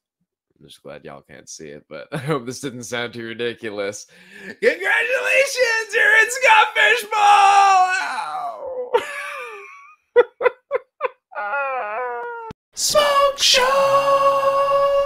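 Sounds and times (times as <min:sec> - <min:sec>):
man cheering: 0:04.4 - 0:09.1, 0:11.4 - 0:12.6
man wavering cry: 0:04.6 - 0:09.0, 0:11.3 - 0:12.6
man howling: 0:04.8 - 0:09.0, 0:11.3 - 0:12.6
man laughing: 0:08.4 - 0:12.5.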